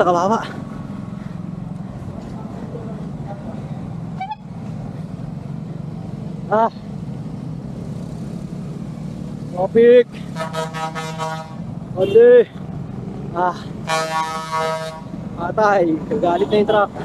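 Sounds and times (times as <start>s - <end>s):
motorcycle engines in slow traffic: 0.0s - 13.9s.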